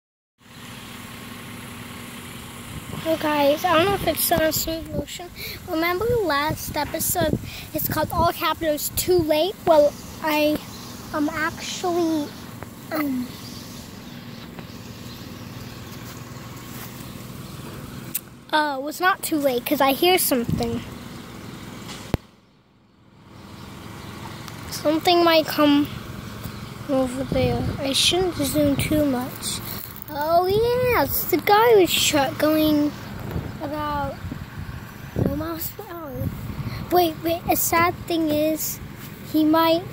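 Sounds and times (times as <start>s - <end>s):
engine humming: 0.4s - 39.9s
sharp click: 18.1s - 18.3s.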